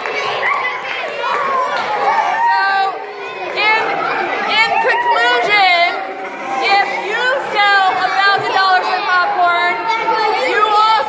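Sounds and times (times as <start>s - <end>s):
voices chattering: 0.0s - 11.0s.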